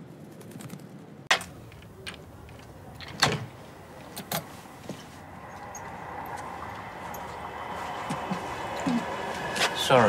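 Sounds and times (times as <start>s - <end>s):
steady background hum: 0.0s - 10.0s.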